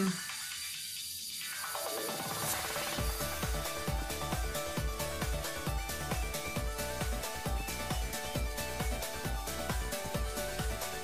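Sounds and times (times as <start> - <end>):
background music: 1.4 - 11.0
bass beat: 3.0 - 11.0.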